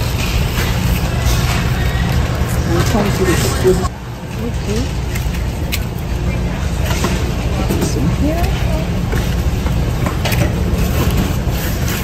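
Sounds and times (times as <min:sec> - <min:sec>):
shopping cart rolling on concrete: 0:00.0 - 0:12.0.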